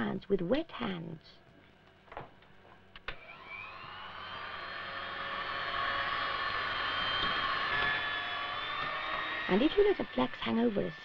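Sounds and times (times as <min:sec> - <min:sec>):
electric hand mixer motor whine: 0:03.1 - 0:11.0.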